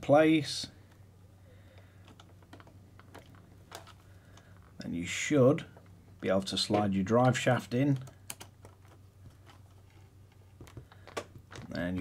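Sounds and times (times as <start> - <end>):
low steady hum: 0.0 - 12.0
faint clicks of small parts: 1.7 - 4.8, 6.7 - 12.0.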